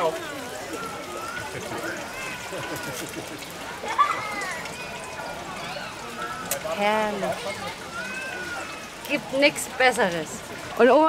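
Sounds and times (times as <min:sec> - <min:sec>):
people talking: 0:00.0 - 0:11.0
water sloshing in a trough: 0:00.0 - 0:11.0.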